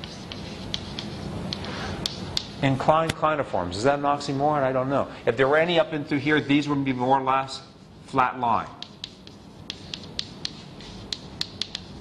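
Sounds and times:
chalk scratching: 0.0 - 2.6, 8.6 - 12.0
chalk tapping on chalkboard: 0.0 - 2.6, 8.7 - 12.0.

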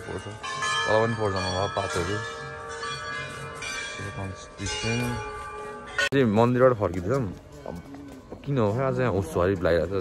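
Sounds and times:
temple bells ringing: 0.0 - 10.0.

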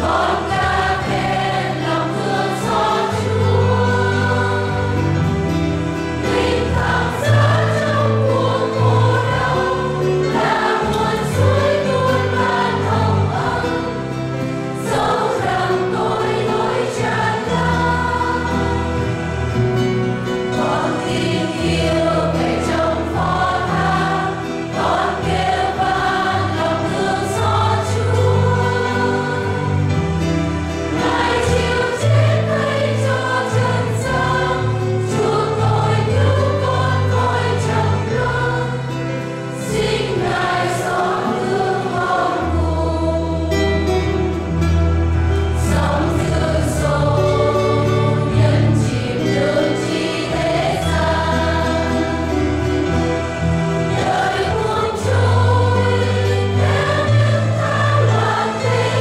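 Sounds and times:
choir singing a hymn: 0.0 - 59.0
low instrumental accompaniment: 0.0 - 59.0.

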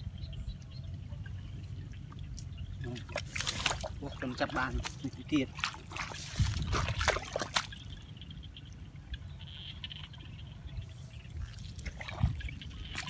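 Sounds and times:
soft water sloshing: 1.6 - 8.4, 10.1 - 13.0
splashes and squelches in mud: 2.0 - 8.1, 11.3 - 13.0.

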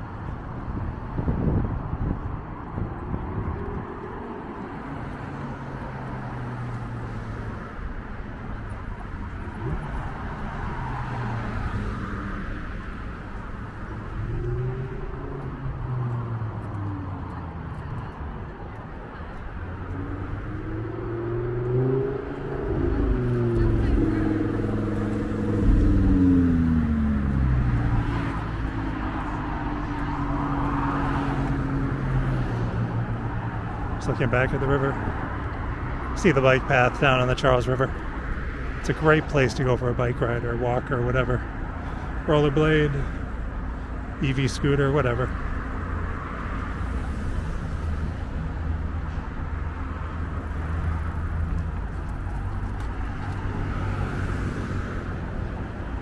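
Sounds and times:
road traffic passing: 0.0 - 56.0.

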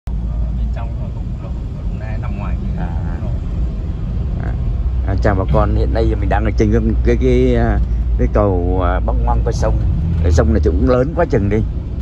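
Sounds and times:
car engine and tyres on wet road: 0.1 - 12.0
soft speech: 0.2 - 3.4, 4.4 - 11.7.

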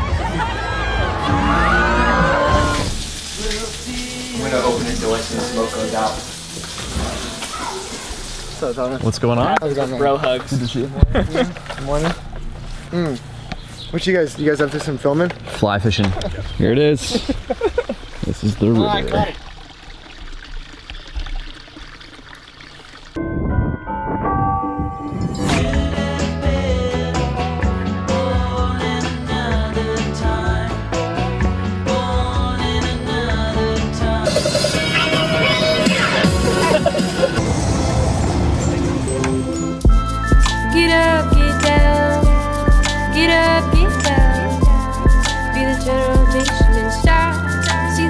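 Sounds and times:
food sizzling in a frying pan: 2.8 - 8.8
stream trickling: 2.8 - 9.3, 16.8 - 23.2
man talking: 18.2 - 19.4
music with held notes: 23.2 - 37.4, 38.5 - 48.0.

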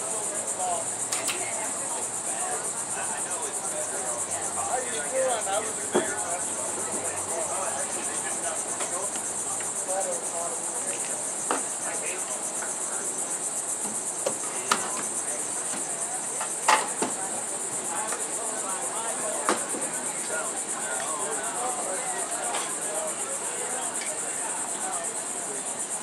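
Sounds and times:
insects chorus: 0.0 - 26.0.

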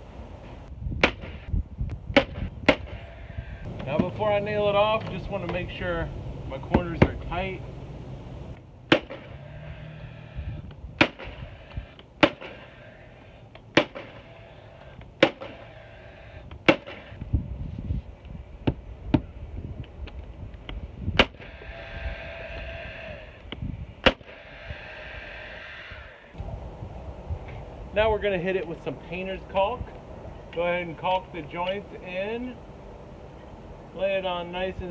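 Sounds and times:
nail gun firing: 1.0 - 1.4, 8.9 - 9.4, 11.0 - 12.8, 13.7 - 14.3, 15.2 - 15.8, 16.6 - 17.2, 21.2 - 21.6, 24.0 - 24.6.

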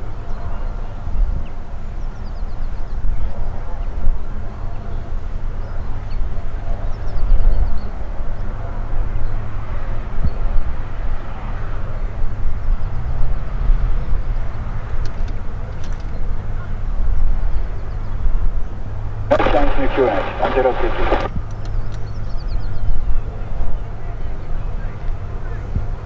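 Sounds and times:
light aircraft engine drone: 0.0 - 26.0.

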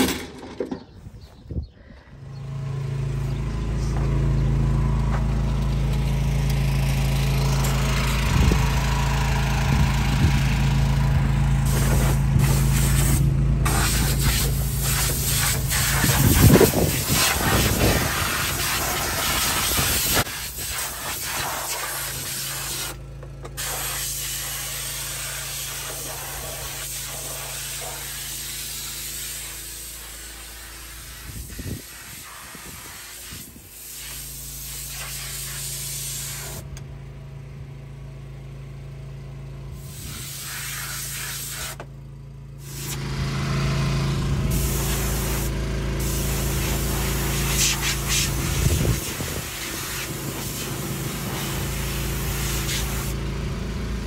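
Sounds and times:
compressed air hissing: 11.6 - 23.0, 23.6 - 36.6, 39.8 - 41.8, 42.6 - 43.0, 44.5 - 53.2.

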